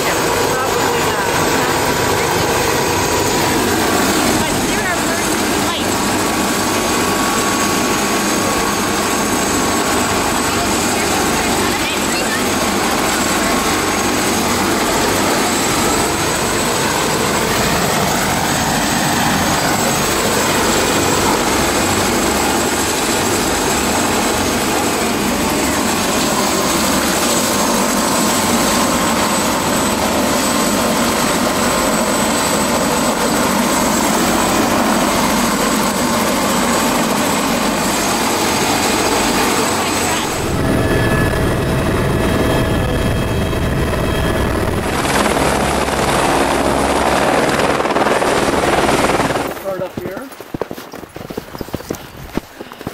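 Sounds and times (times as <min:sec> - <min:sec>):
helicopter turbine and rotor: 0:00.0 - 0:52.9.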